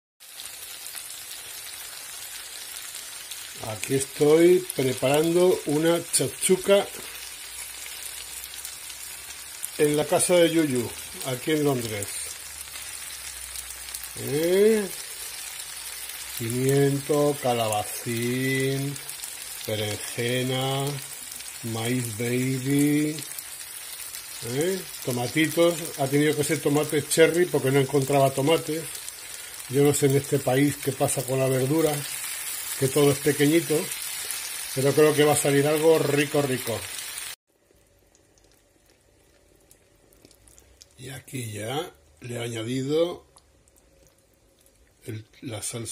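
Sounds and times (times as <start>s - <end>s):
vegetables sizzling in a pan: 0.2s - 43.1s.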